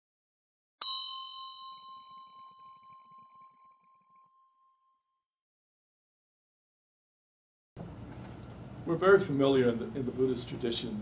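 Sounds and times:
small metal bell ringing: 0.8 - 5.2.

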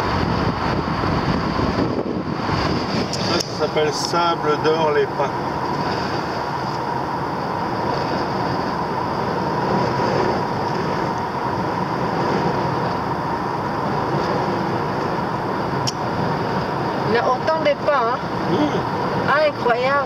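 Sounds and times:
car road and engine noise: 0.0 - 20.0
faint steady whine: 0.0 - 20.0.

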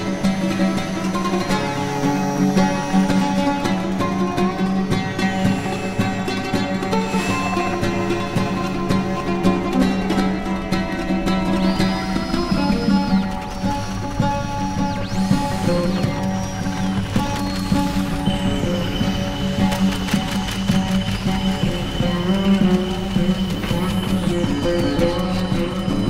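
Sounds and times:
short-wave radio whistles: 0.0 - 26.0.

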